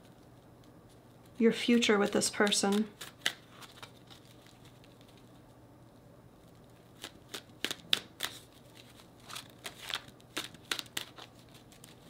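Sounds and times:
cards being shuffled: 0:02.0 - 0:05.4, 0:06.9 - 0:12.0.

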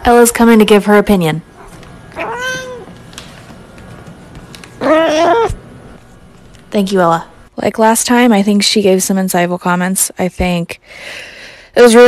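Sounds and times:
cat meowing: 0:02.2 - 0:02.9, 0:04.8 - 0:05.6.

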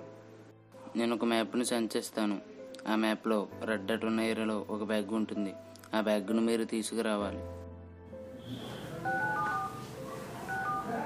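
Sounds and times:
soft background music: 0:00.0 - 0:11.0
phone keypad beeps: 0:08.5 - 0:11.0.

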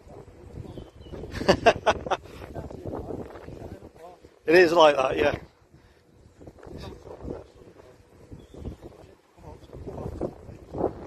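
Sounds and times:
low wind rumble: 0:00.0 - 0:11.0
man laughing: 0:01.3 - 0:02.4.

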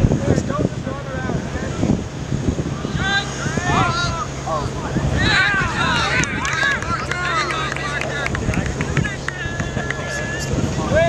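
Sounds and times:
wind rumbling on microphone: 0:00.0 - 0:11.0
people shouting: 0:02.7 - 0:11.0.

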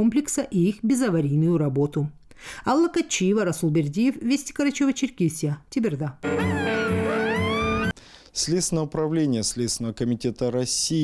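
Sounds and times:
synth chord sweeping upward: 0:06.2 - 0:07.9.

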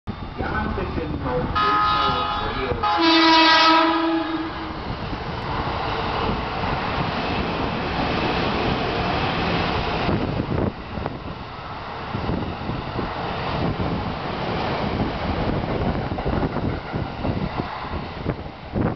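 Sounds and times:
train rumbling past: 0:00.1 - 0:18.9
train air horn blast: 0:01.6 - 0:04.8.

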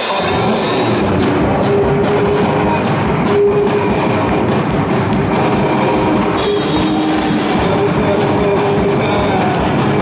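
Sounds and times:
live rock band playing loudly: 0:00.0 - 0:10.0
steady drum beat: 0:00.0 - 0:10.0.

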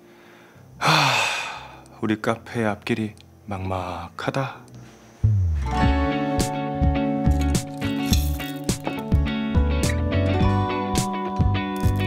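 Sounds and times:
man sighing: 0:00.8 - 0:01.9.

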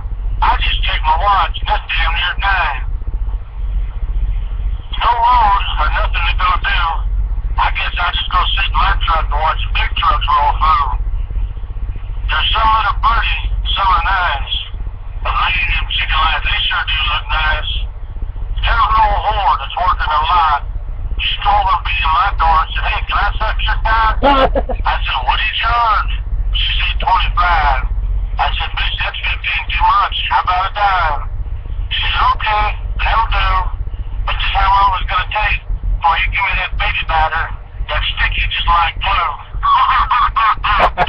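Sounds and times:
low mechanical drone: 0:00.0 - 0:41.0
steady low hum: 0:00.0 - 0:41.0
man speaking: 0:00.4 - 0:02.8, 0:04.9 - 0:07.0, 0:07.6 - 0:11.0, 0:12.3 - 0:14.7, 0:15.3 - 0:17.9, 0:18.6 - 0:20.6, 0:21.2 - 0:31.3, 0:31.9 - 0:41.0.

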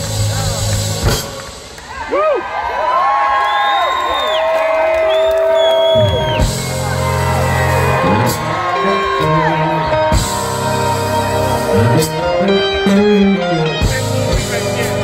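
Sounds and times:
live band playing through pa: 0:00.0 - 0:02.3, 0:05.2 - 0:15.0.

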